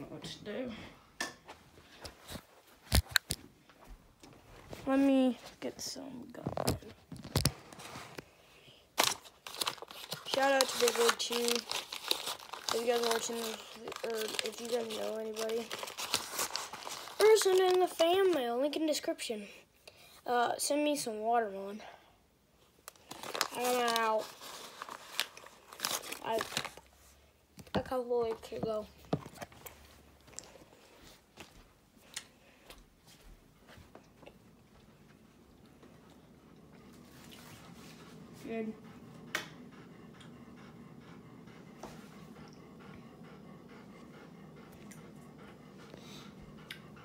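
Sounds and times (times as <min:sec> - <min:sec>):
gum pack crinkling: 0:09.0 - 0:18.4, 0:22.8 - 0:26.9.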